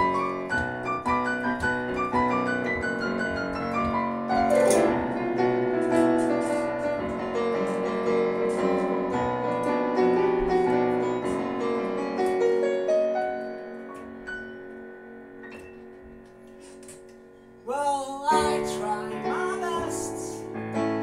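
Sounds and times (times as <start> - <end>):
digital piano playing: 0.0 - 21.0.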